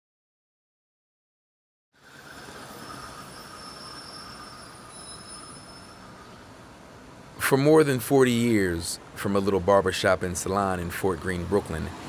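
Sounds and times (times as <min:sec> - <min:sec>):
thin high-pitched squealing tones: 0:02.0 - 0:06.9
traffic noise: 0:02.0 - 0:12.0.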